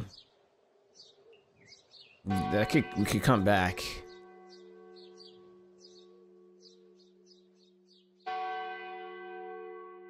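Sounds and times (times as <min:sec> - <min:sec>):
church bell ringing: 0:02.3 - 0:10.0
high bird chirps: 0:04.0 - 0:08.4.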